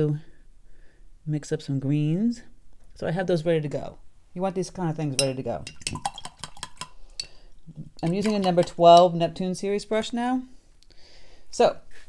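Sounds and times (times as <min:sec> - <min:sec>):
paintbrush tapping palette tray: 0:08.0 - 0:09.1.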